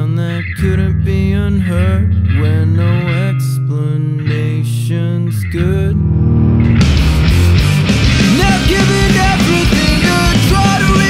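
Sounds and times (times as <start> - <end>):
person singing: 0.0 - 6.2, 8.2 - 11.0
guitar: 0.0 - 11.0
full rock band with cymbals: 6.8 - 11.0.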